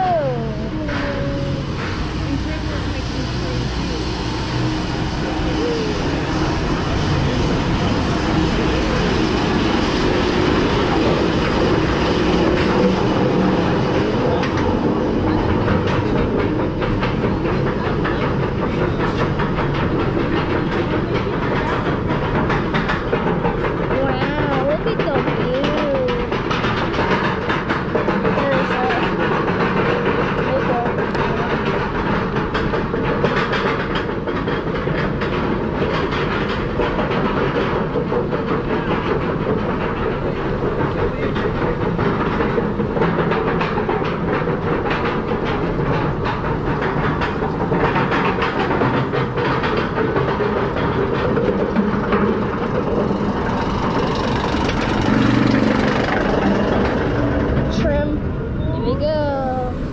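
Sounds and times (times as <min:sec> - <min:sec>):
roller coaster chain lift rattling: 0:00.0 - 0:59.9.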